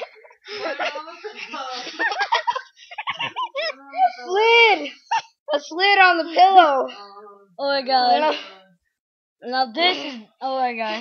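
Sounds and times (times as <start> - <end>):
boy laughing hard: 0.0 - 4.4.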